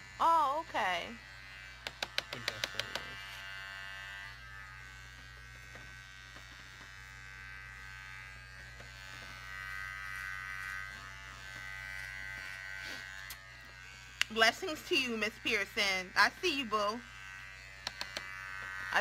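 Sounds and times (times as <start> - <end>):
electric hair clippers buzzing: 0.0 - 19.0.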